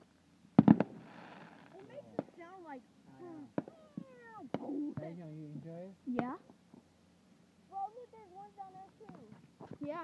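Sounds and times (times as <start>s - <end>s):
fireworks popping: 0.6s - 2.5s, 3.5s - 5.1s.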